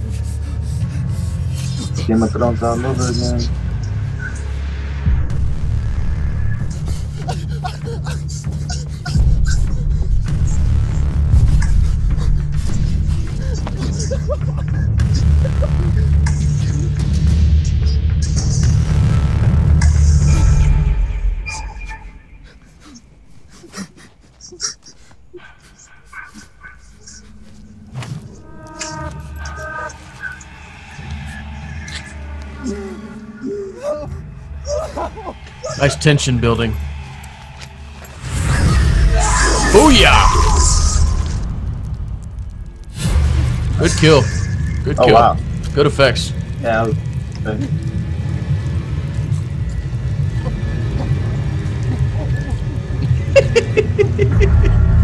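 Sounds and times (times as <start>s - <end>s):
deep rumble: 0.0s - 23.6s, 25.2s - 55.0s
suspense film score drone: 0.0s - 55.0s.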